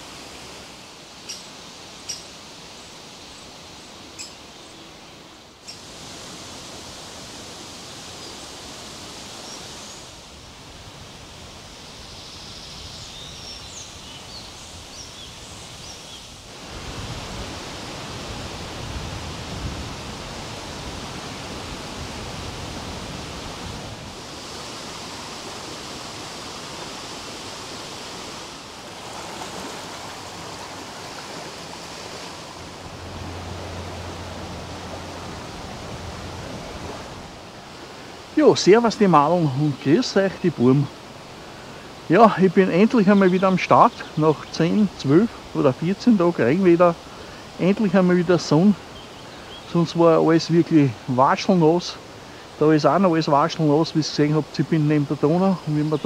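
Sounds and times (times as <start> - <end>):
river water rushing: 0.0 - 56.0
wind in trees: 0.0 - 56.0
bird chirps: 1.2 - 2.3, 4.1 - 5.0
deep rumble: 32.6 - 37.2.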